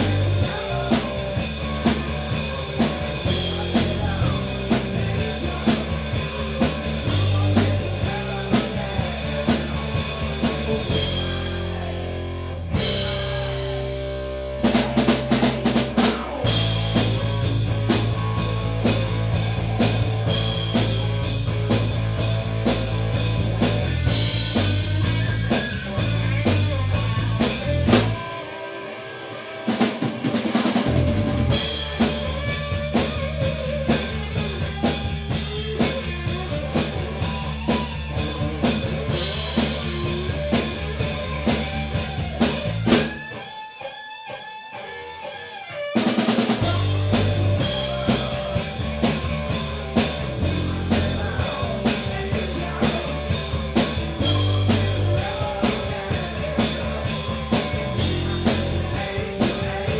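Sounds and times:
bass guitar: 0.0s - 59.9s
drum kit: 0.0s - 59.9s
electric guitar: 0.0s - 59.9s.

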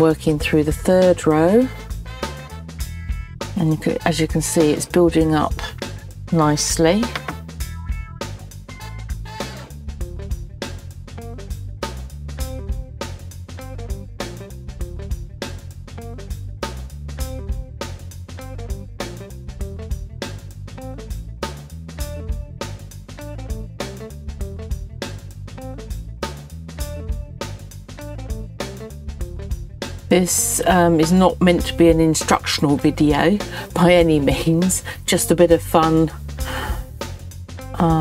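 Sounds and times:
instrumental music with guitar: 1.7s - 4.0s, 7.0s - 21.3s.

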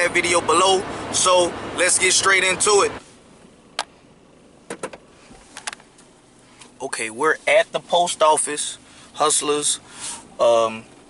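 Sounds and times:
car cabin background noise: 0.0s - 11.0s.

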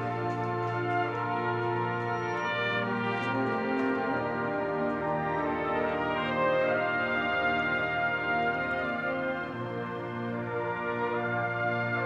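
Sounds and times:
brass band playing a slow hymn: 0.0s - 12.0s.

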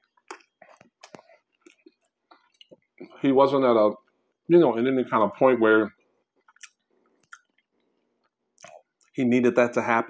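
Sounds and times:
faint chewing of food: 0.0s - 3.2s, 6.0s - 9.2s.

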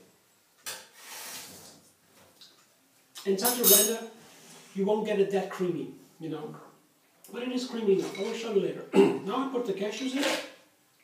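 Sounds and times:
rustling or scraping: 3.6s - 4.9s.

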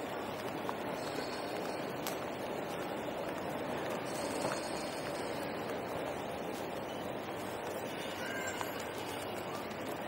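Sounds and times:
airport terminal background noise: 0.0s - 10.0s.

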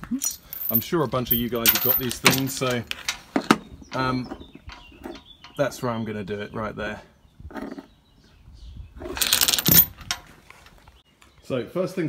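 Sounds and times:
chain links rattling on metal: 0.2s - 3.3s, 9.1s - 10.3s.

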